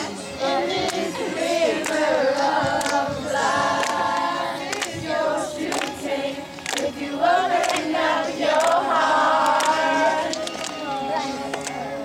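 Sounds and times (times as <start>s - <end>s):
girls singing in harmony: 0.0s - 12.0s
sharp hand claps: 2.8s - 3.0s, 4.7s - 5.0s, 5.6s - 6.0s, 6.6s - 6.9s, 7.6s - 7.9s, 9.4s - 10.8s, 11.5s - 11.8s.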